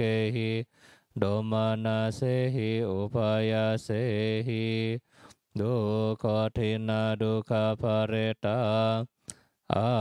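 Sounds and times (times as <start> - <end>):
man chanting on one pitch: 0.0 - 5.0, 5.6 - 9.1, 9.7 - 10.0.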